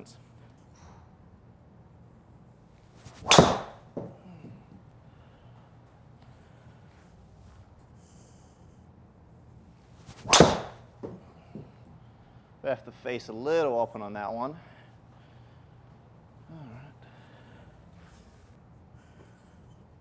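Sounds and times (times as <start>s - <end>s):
golf swing whoosh: 3.0s - 3.8s, 10.0s - 10.8s
ball hitting impact screen: 3.1s - 4.2s, 10.1s - 11.7s
golf club striking ball: 3.2s - 4.1s, 10.2s - 11.2s.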